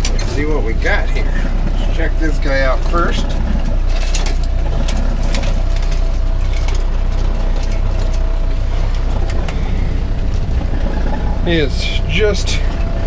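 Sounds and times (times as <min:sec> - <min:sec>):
outboard motor idling: 0:00.0 - 0:13.0
wire crab pot rattling: 0:02.9 - 0:13.0.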